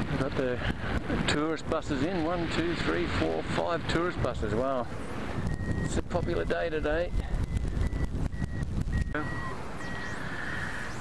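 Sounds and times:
wind buffeting microphone: 0.0s - 10.2s
high repeated beeping: 5.5s - 6.7s, 7.4s - 10.2s.

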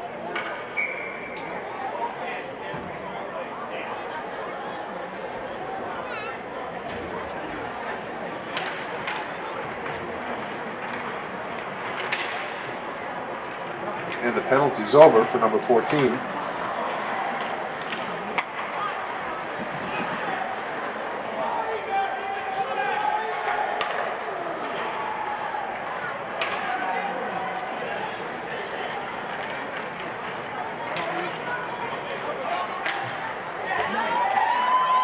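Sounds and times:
murmur of spectator voices: 0.0s - 35.0s
hockey sticks and puck knocking: 8.5s - 14.6s, 17.4s - 18.8s, 23.3s - 25.0s, 26.3s - 26.8s, 29.3s - 34.0s.

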